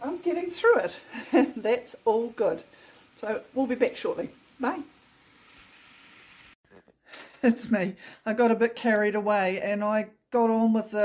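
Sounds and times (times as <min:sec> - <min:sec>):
onions sizzling in a pan: 0:00.0 - 0:06.6.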